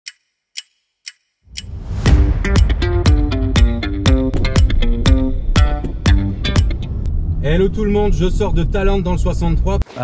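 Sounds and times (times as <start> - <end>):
sharp clock-like ticks: 0.0 - 2.0.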